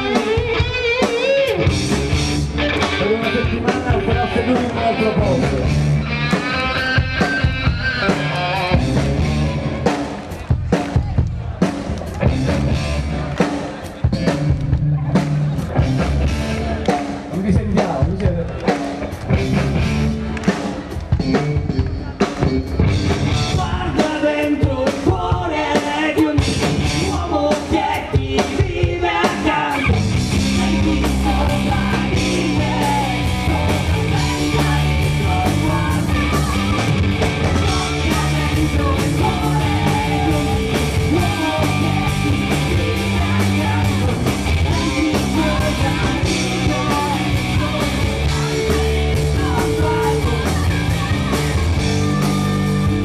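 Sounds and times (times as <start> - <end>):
bass guitar: 0.0 - 53.0
drum kit beat: 0.0 - 53.0
electric guitar: 0.0 - 53.0
live rock band playing: 0.0 - 53.0
voices singing: 23.4 - 53.0.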